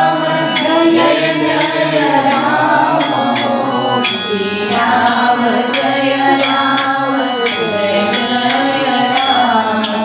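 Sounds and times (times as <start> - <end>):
devotional chant sung: 0.0 - 10.0
metallic cymbal strikes: 0.0 - 10.0.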